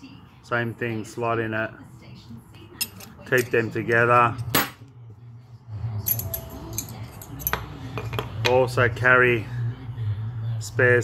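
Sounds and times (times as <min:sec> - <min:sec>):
metal bearings clinking: 0:06.0 - 0:08.7.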